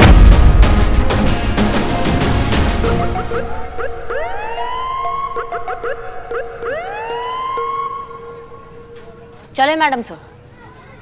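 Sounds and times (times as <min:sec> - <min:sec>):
background music: 0:00.0 - 0:10.1
police siren wailing: 0:02.8 - 0:09.3.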